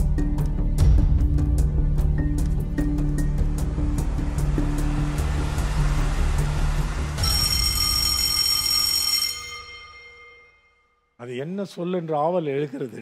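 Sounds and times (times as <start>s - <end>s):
pulsing bass timer music: 0.0s - 8.9s.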